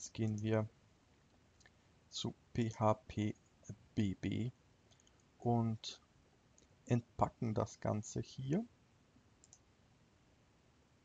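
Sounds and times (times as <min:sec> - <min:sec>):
computer mouse clicks: 0:04.9 - 0:05.3, 0:09.4 - 0:09.7.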